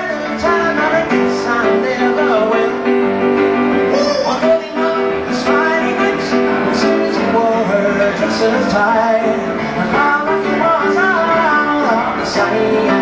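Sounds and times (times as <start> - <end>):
man singing: 0.0 - 3.1, 3.8 - 13.0
grand piano: 0.0 - 13.0.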